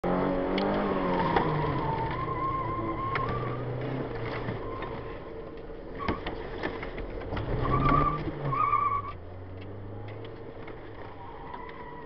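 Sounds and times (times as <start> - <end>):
car engine from inside cabin: 0.0 - 11.8.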